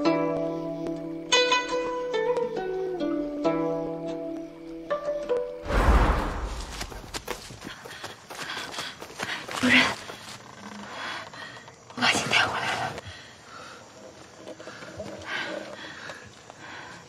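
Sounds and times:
heavy boom with rumble: 0:05.7 - 0:07.0.

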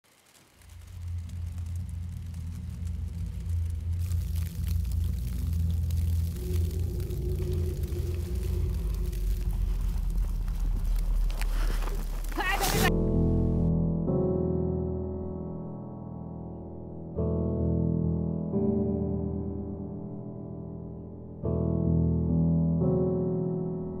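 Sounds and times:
windy hiss with crackles: 0:00.0 - 0:12.9
low rumbling drone: 0:00.4 - 0:14.2.

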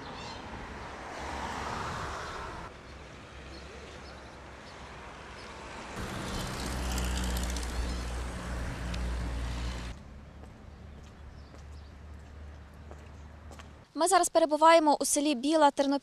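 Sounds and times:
open-air background: 0:00.0 - 0:16.0
vehicle passing by: 0:00.6 - 0:04.0, 0:04.8 - 0:11.0.

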